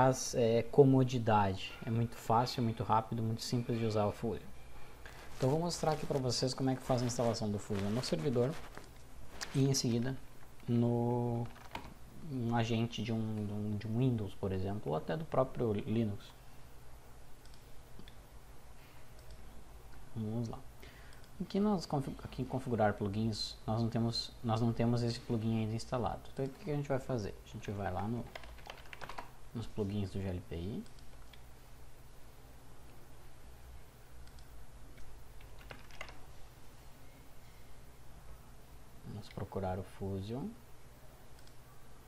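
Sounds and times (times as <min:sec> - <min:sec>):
low background hum: 0:00.0 - 0:42.0
computer mouse clicks: 0:17.4 - 0:18.2, 0:19.2 - 0:19.4, 0:30.8 - 0:31.4, 0:34.2 - 0:36.2, 0:41.3 - 0:41.6
computer keyboard typing: 0:28.2 - 0:29.3, 0:35.4 - 0:36.2.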